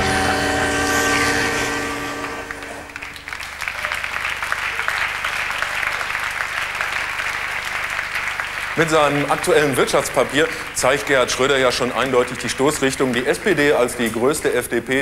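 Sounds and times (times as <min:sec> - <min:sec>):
held musical chord: 0:00.0 - 0:03.3
audience applauding: 0:00.9 - 0:15.0.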